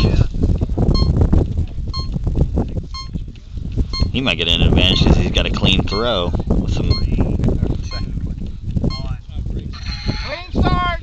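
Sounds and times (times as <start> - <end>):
wind on microphone: 0.0 - 11.0
electronic timer beeping: 0.9 - 1.2, 1.9 - 2.2, 2.9 - 3.2, 3.9 - 4.2, 4.8 - 5.2, 5.8 - 6.2, 6.8 - 7.2, 7.8 - 8.1, 8.9 - 9.1.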